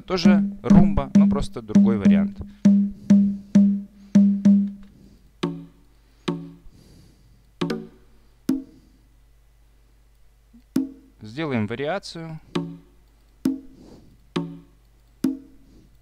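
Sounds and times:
conga drum hits: 0.2 - 4.8, 5.4 - 5.7, 6.3 - 6.6, 7.6 - 8.7, 10.8 - 11.1, 12.5 - 12.9.

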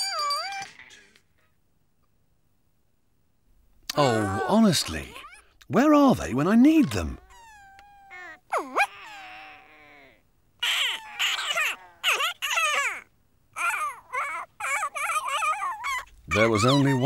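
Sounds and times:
squeaky gibberish voices: 0.0 - 1.3, 3.9 - 17.0.

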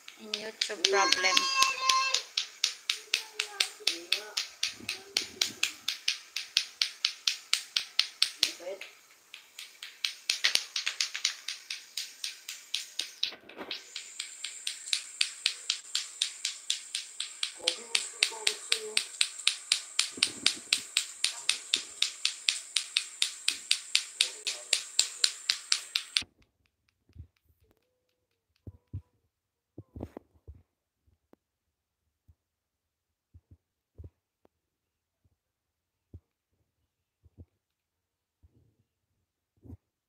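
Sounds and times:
clacker balls clacking: 0.0 - 28.9.

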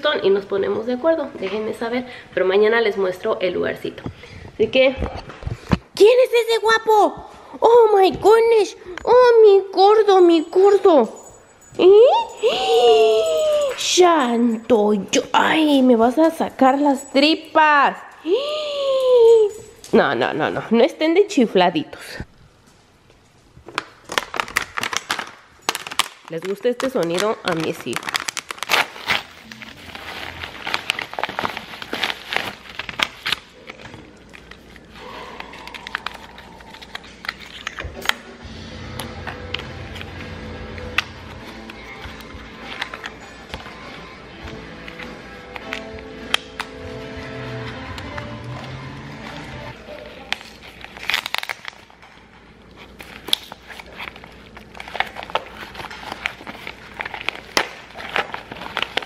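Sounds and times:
plastic packaging crinkling: 23.6 - 38.0, 49.7 - 59.0
plastic bottle crinkling: 23.6 - 38.1, 49.9 - 59.0
background music with held notes: 38.4 - 49.8.

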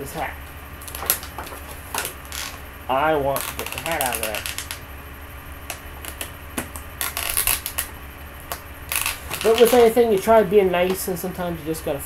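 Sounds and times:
plastic packaging crackling: 0.8 - 2.7, 3.3 - 4.9, 5.6 - 10.3.

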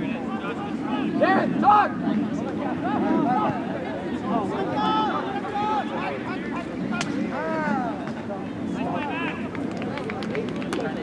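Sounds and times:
players and spectators shouting: 0.0 - 8.1
murmur of voices: 0.0 - 11.0.

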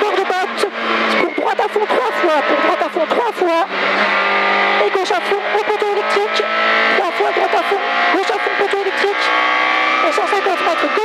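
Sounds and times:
rally car engine at high revs: 0.0 - 11.0.

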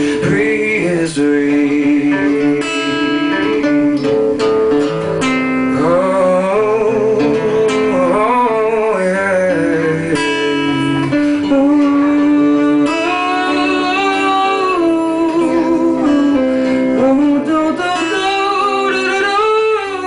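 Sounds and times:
man singing: 0.0 - 4.8, 5.6 - 20.0
acoustic guitar strummed: 0.0 - 20.0.

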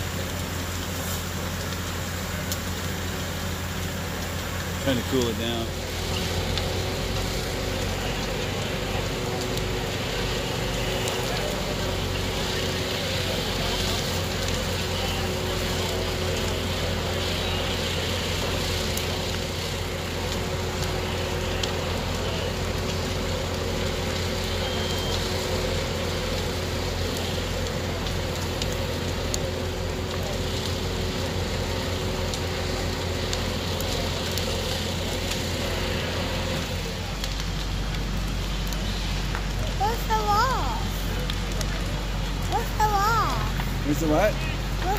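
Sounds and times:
fire engine motor and pump: 0.0 - 44.9
house fire burning: 0.0 - 44.9.

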